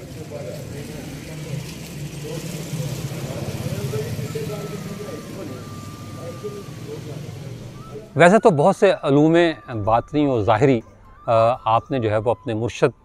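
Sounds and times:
low engine-like rumble: 0.0 - 8.2
distant people talking: 0.0 - 12.9.

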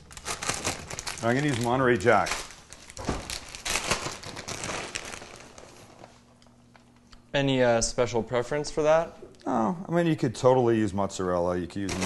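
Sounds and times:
plastic bag crinkling: 0.0 - 6.4, 11.8 - 12.0.

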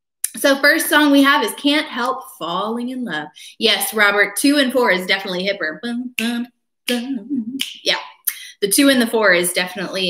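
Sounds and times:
woman speaking: 0.3 - 10.0.

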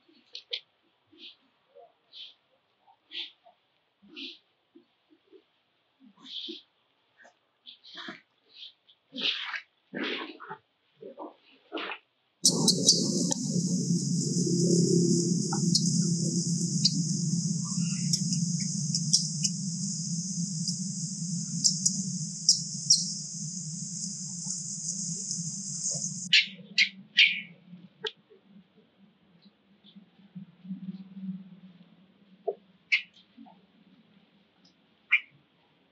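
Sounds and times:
high insect drone: 12.4 - 26.3
low hum: 12.4 - 26.3
steady high hiss: 12.4 - 26.3.

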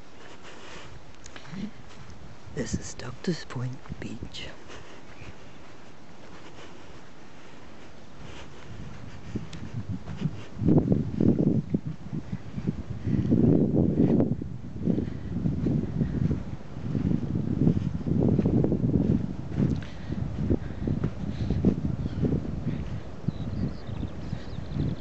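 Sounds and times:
footsteps on sand: 0.0 - 25.0
wind buffeting microphone: 0.0 - 25.0.

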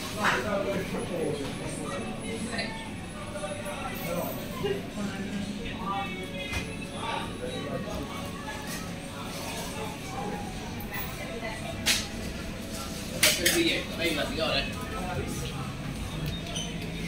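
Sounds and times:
faint voices: 0.0 - 17.0.

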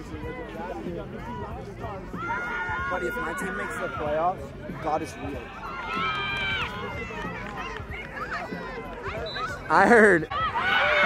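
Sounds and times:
players and spectators shouting: 0.0 - 11.0.

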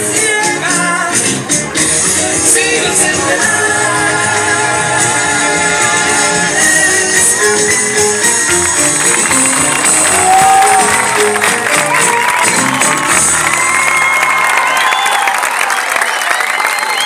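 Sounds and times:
music: 0.0 - 15.0
audience applauding and cheering: 3.4 - 17.0.

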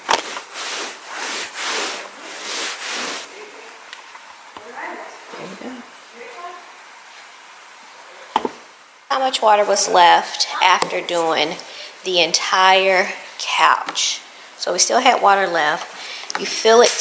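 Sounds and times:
hissing rustling noise bursts: 0.0 - 3.6.

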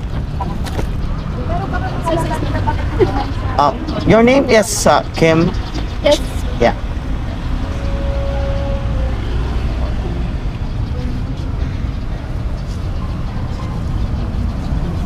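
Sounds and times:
street traffic rumble: 0.0 - 15.0
faint voices: 1.2 - 15.0.

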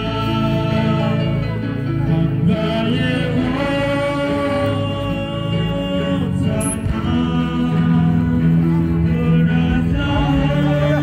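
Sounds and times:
group of voices singing: 0.0 - 11.0.

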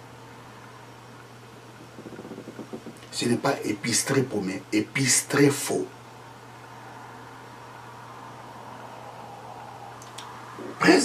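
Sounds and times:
low hum: 0.0 - 4.4
background hiss: 0.0 - 11.0.

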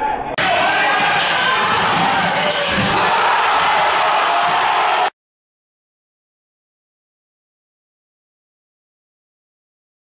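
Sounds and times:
crowd din: 0.0 - 5.1.

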